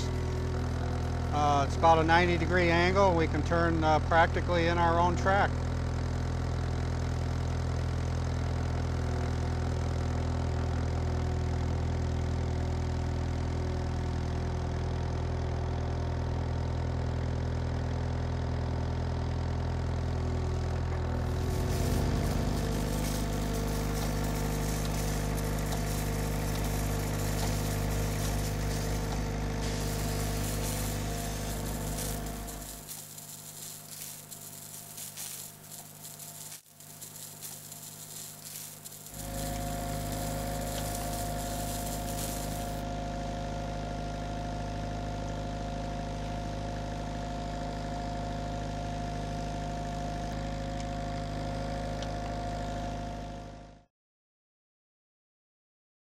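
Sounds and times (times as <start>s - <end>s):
diesel engine running: 0.0s - 44.7s.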